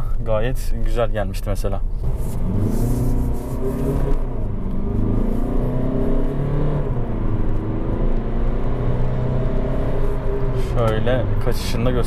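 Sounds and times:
diesel engine accelerating in cabin: 1.6s - 12.0s.

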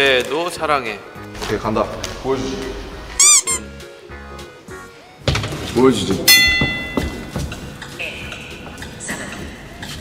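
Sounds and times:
soft background music: 0.0s - 10.0s
cartoonish squeak: 3.2s - 3.7s.

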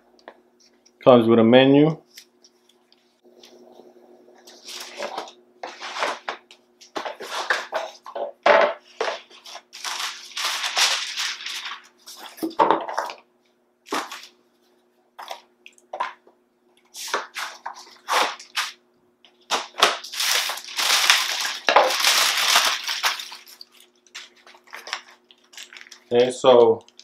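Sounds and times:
faint steady hum: 0.0s - 27.0s
cardboard rustling and scraping: 4.5s - 8.2s, 17.0s - 18.8s.

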